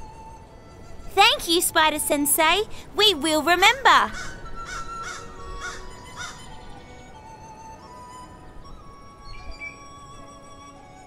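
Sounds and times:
soft background music: 0:00.0 - 0:11.0
crow cawing: 0:04.2 - 0:06.4.

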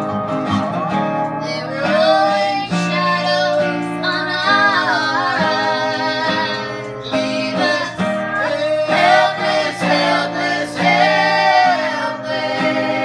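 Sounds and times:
guitar accompaniment: 0:00.0 - 0:13.0
female voices singing in harmony: 0:01.4 - 0:13.0.

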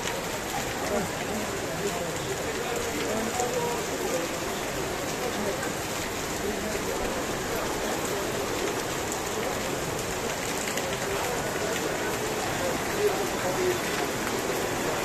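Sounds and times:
heavy rain on pavement: 0:00.0 - 0:15.0.

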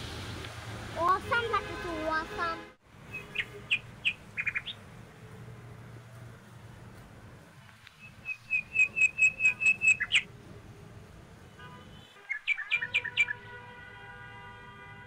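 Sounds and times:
bird calling sharp high notes: 0:08.0 - 0:10.2, 0:12.2 - 0:13.4.

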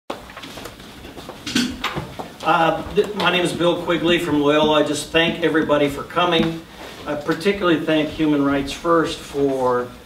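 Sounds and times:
objects clattering: 0:00.2 - 0:04.9.

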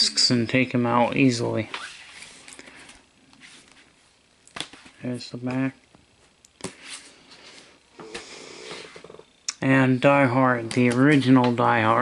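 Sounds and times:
cardboard sleeves rustling and scraping: 0:01.7 - 0:04.0, 0:06.6 - 0:07.7.

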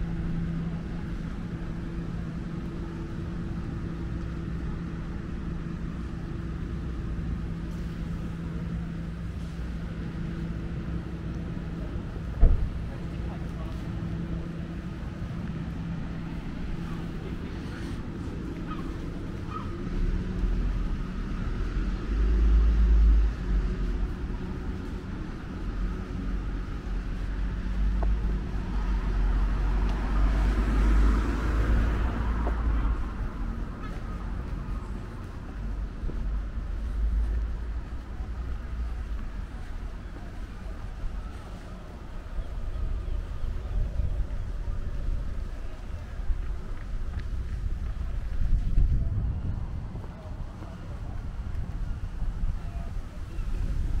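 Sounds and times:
traffic hum: 0:00.0 - 0:54.0
traffic rumble: 0:00.0 - 0:54.0
vehicle approaching: 0:00.0 - 0:54.0.

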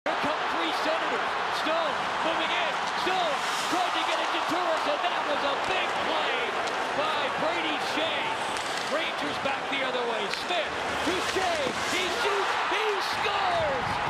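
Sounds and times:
crowd roar: 0:00.1 - 0:10.0, 0:10.6 - 0:14.0
hockey sticks and puck clacking: 0:02.0 - 0:07.0, 0:07.6 - 0:13.5.

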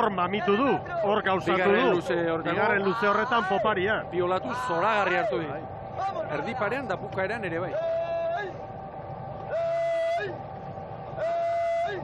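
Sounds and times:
water and oar noise: 0:00.0 - 0:12.0.

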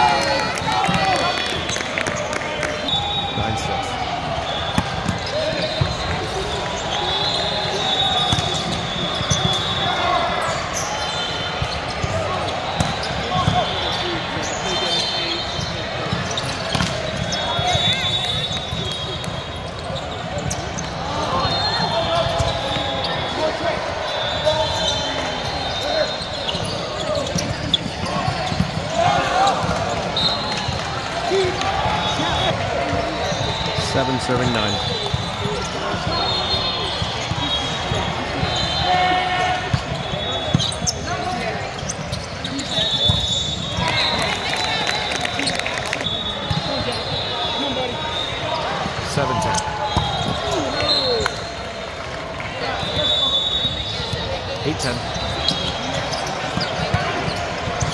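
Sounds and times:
players shouting: 0:00.0 - 0:41.8, 0:42.5 - 0:57.9
spectators' voices: 0:00.0 - 0:57.9
balls being struck and bouncing: 0:16.0 - 0:18.0.

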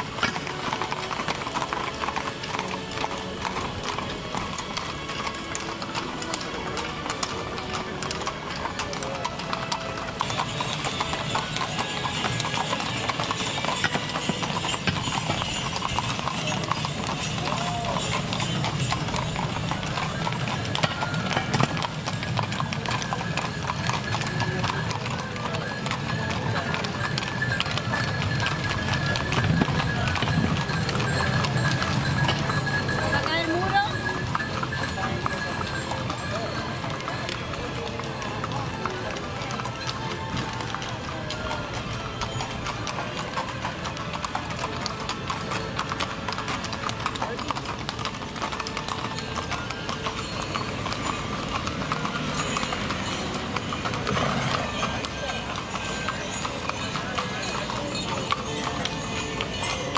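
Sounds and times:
horse hooves clip-clopping on asphalt: 0:00.0 - 0:59.9.

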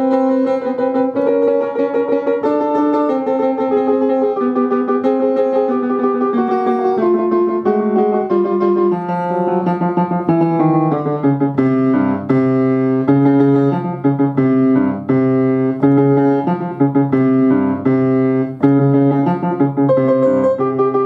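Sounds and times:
upright piano four hands: 0:00.0 - 0:21.0.

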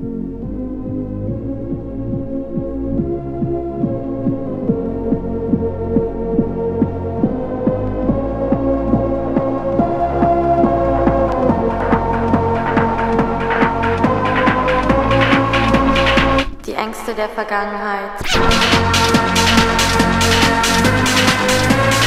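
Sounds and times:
held synth chords: 0:00.0 - 0:16.6, 0:18.2 - 0:22.0
kick drum beating: 0:01.2 - 0:16.5.

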